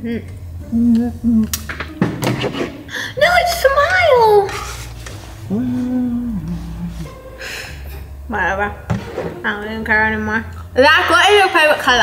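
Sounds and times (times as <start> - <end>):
person humming mm-hmm: 0.6 - 1.7, 5.4 - 7.9
heavy thud: 8.9 - 9.5.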